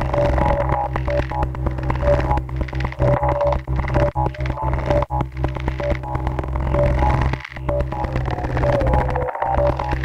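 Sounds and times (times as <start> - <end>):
low synthesizer drone: 0.0 - 10.0.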